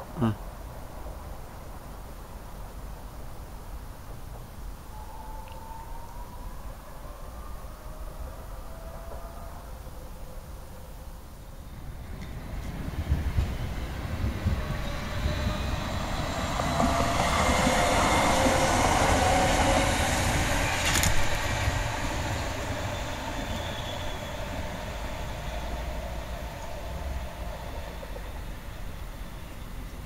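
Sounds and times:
tram whine: 0:04.1 - 0:30.0
tram wheels rumbling on rails: 0:11.5 - 0:30.0.

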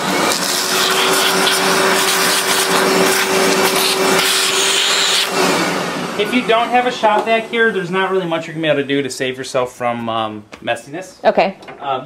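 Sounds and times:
vacuum cleaner running: 0:00.0 - 0:10.0.

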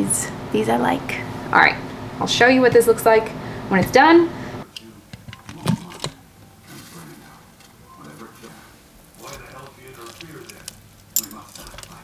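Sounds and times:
faint kitchen sounds: 0:00.0 - 0:12.0.

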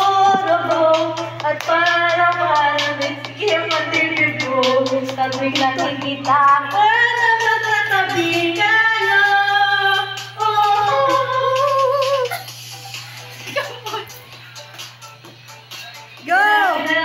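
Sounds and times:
woman singing pop song: 0:00.0 - 0:12.4, 0:14.6 - 0:17.0.

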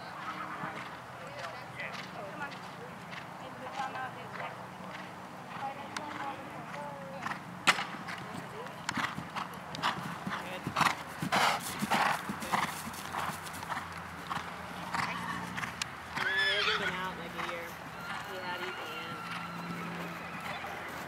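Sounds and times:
horse hoofbeats on grass: 0:01.4 - 0:21.0.

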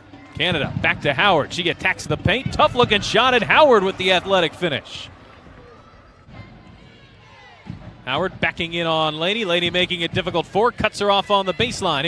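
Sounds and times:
low crowd murmur: 0:00.0 - 0:08.7.

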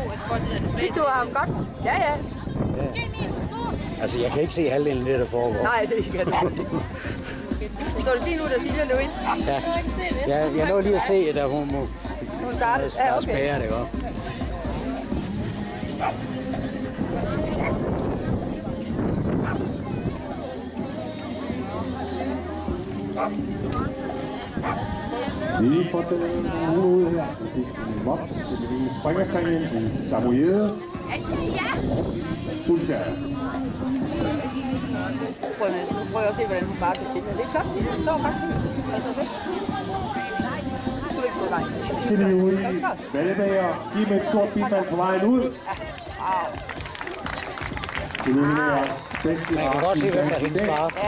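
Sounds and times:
crowd chatter: 0:00.0 - 0:51.0.

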